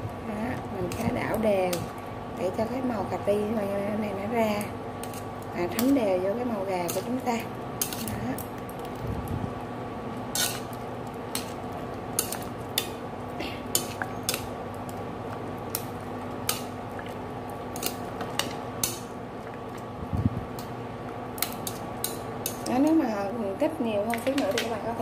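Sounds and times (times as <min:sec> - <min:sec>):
steady hum: 0:00.0 - 0:25.0
metal chopsticks scraping pan: 0:06.8 - 0:08.4, 0:10.3 - 0:10.7.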